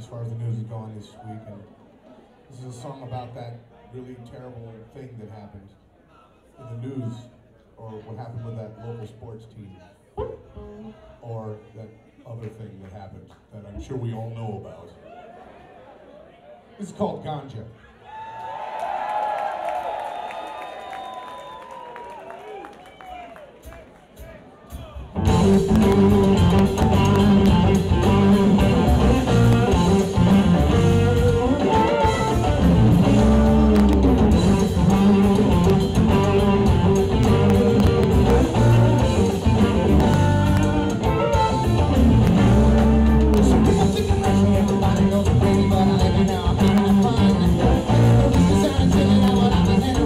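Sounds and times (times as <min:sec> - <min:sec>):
blues-rock band playing: 0:25.2 - 0:50.0
harmonica: 0:25.3 - 0:45.0.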